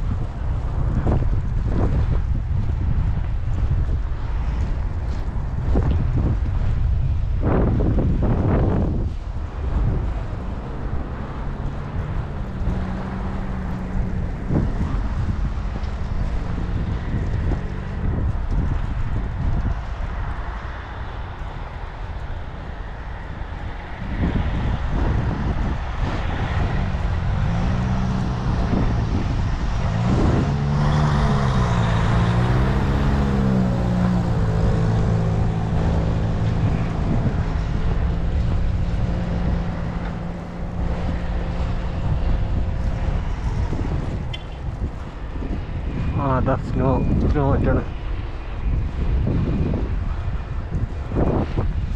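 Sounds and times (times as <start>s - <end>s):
vehicle engine humming: 0.0s - 51.9s
wind rumble on microphone: 0.0s - 51.9s.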